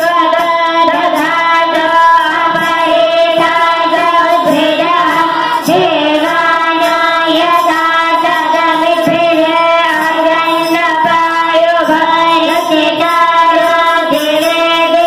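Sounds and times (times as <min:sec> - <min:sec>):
children singing devotional chant: 0:00.0 - 0:15.0.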